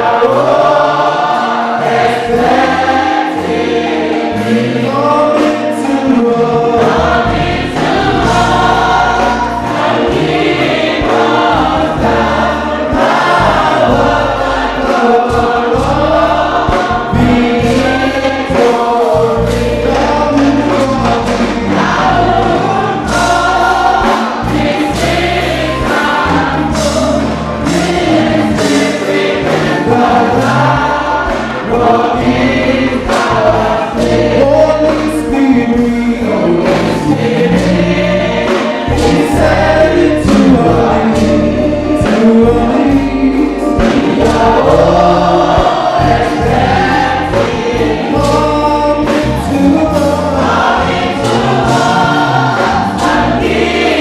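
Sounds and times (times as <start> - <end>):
choir singing a gospel hymn: 0.0 - 54.0
low instrumental backing: 0.0 - 54.0.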